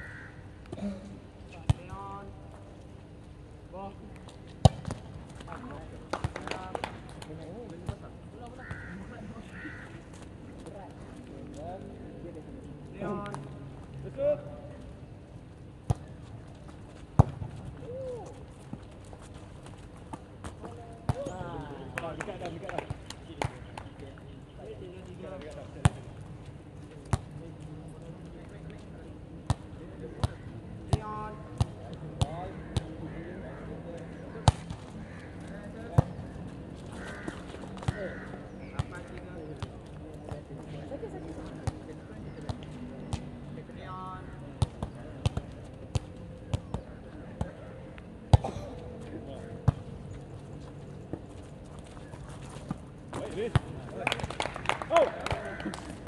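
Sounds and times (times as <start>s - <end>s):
players' voices: 0.7s - 2.9s, 3.7s - 16.8s, 20.4s - 56.0s.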